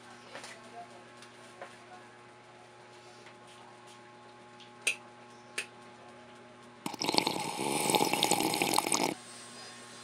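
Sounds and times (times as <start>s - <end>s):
person gulping: 6.9s - 9.2s.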